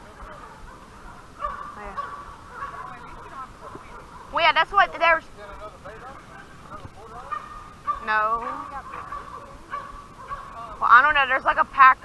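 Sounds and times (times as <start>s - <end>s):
dogs baying in the distance: 0.0s - 5.2s, 5.8s - 11.1s.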